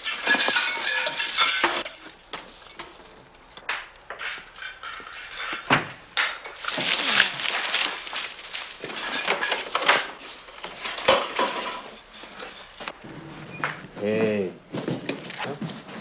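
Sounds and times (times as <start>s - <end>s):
clattering and knocking: 0.0s - 13.9s.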